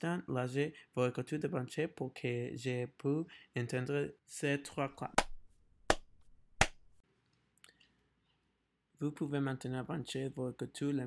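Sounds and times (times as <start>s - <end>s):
sharp claps: 5.2s - 6.9s.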